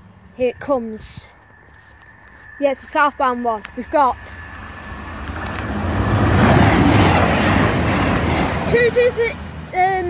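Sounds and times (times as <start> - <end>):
diesel train passing: 0.0 - 10.0.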